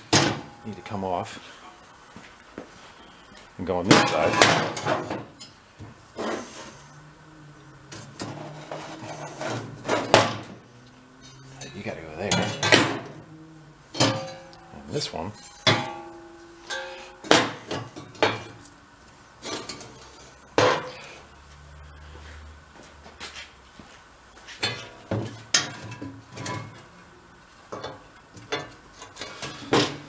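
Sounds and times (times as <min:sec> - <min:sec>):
metal knocks and clinks: 0:13.9 - 0:18.6.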